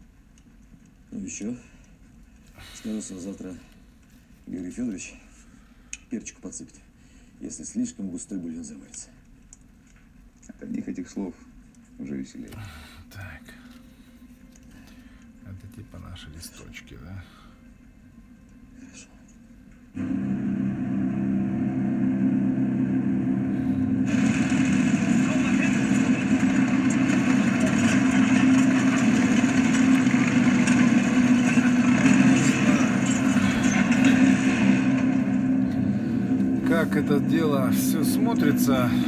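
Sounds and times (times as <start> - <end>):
loud rushing noise: 20.0 - 39.0
steady motor hum: 20.0 - 39.0.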